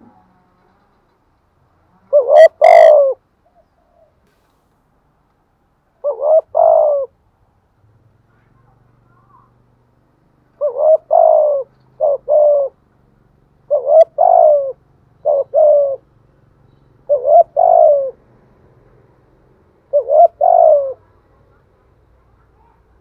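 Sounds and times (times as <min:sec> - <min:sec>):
dove cooing: 0:02.0 - 0:04.2, 0:06.0 - 0:07.2, 0:10.6 - 0:12.8, 0:13.6 - 0:16.1, 0:17.0 - 0:18.2, 0:19.9 - 0:21.2.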